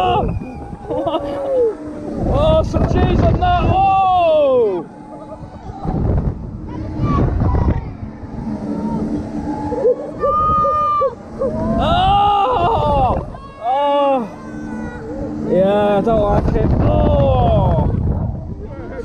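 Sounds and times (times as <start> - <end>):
riders screaming and yelling: 0.0 - 2.7, 3.4 - 15.5
wind buffeting microphone: 0.0 - 13.6, 14.3 - 19.0.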